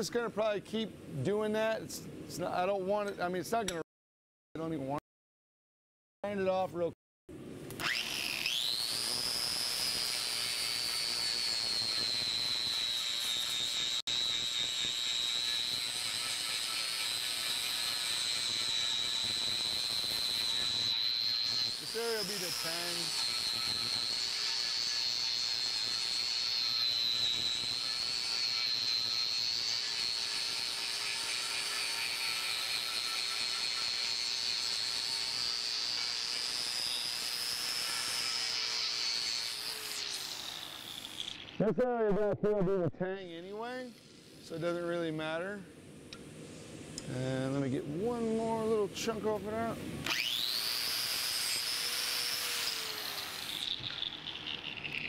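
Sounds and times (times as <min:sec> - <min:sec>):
angle grinder cutting steel: 0:07.8 - 0:41.6, 0:50.0 - 0:55.0.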